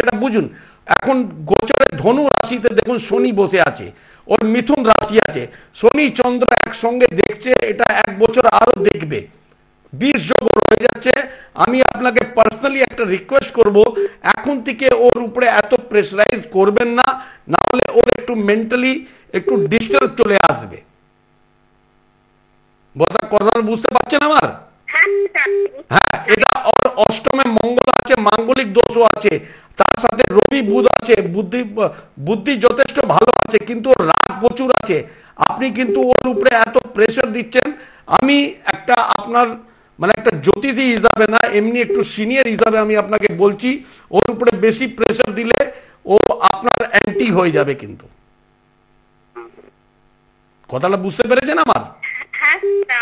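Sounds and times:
electrical mains hum: 0.0s - 53.0s.

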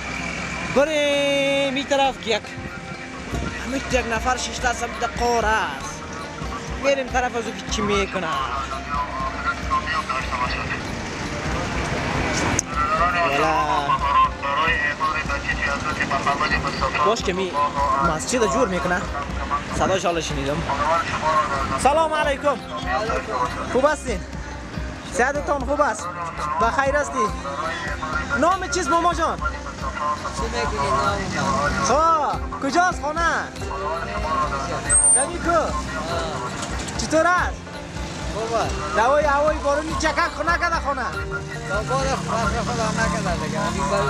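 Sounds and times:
road traffic rumble: 0.0s - 44.0s
people talking: 3.5s - 11.8s, 12.5s - 24.2s, 25.2s - 37.5s, 38.4s - 44.0s
high squeak: 34.9s - 35.3s.

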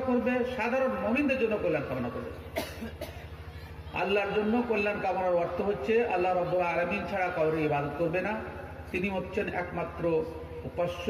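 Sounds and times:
steady low hum: 0.0s - 11.0s
man coughing into microphone: 2.3s - 3.4s.

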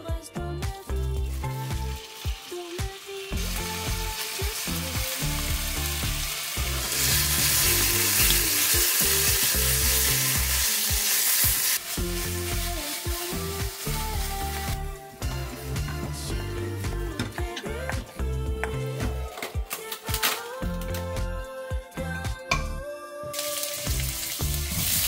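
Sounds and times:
meat sizzling in a pan: 1.2s - 15.9s, 23.4s - 25.0s.

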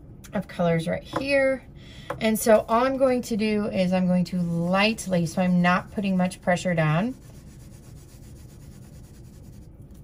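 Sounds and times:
oil pastel scratching on paper: 4.2s - 10.0s.

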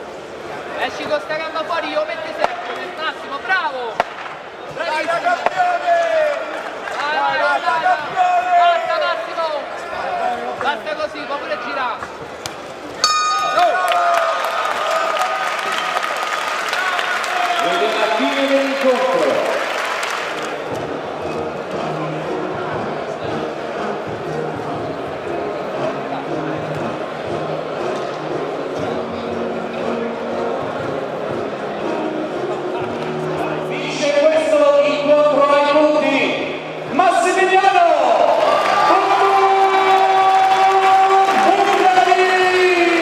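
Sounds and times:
crowd chatter: 0.0s - 43.0s
boxing bell ringing: 13.0s - 14.4s
crowd cheering and applause: 13.0s - 25.0s, 37.3s - 43.0s
background music: 13.0s - 43.0s.

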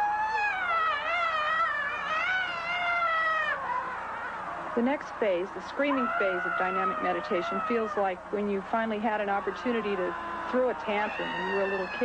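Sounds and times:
person screaming high-pitched: 0.0s - 3.6s.

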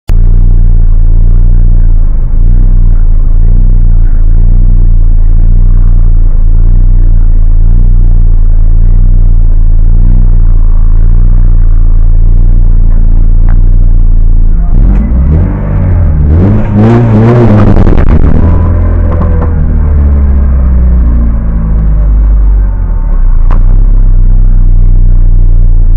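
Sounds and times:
engine revving blips: 0.1s - 25.9s
race car engine idling: 0.1s - 25.9s.

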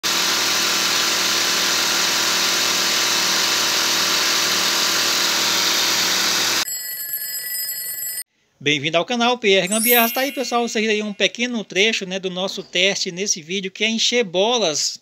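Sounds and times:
alarm clock ringing: 6.6s - 8.3s, 9.7s - 11.2s.

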